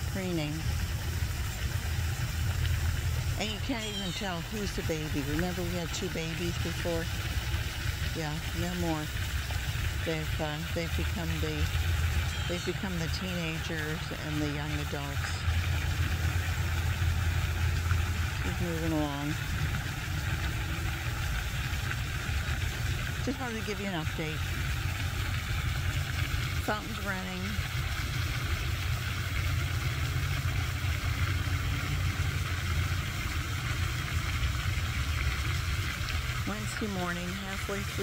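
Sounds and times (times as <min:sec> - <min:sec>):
fountain spraying water: 0:00.0 - 0:38.0
steady low rumble: 0:00.0 - 0:38.0.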